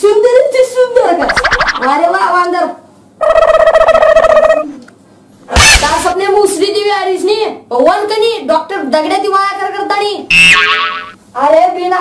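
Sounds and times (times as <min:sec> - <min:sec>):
fluttering pitched tone: 0:01.2 - 0:02.1.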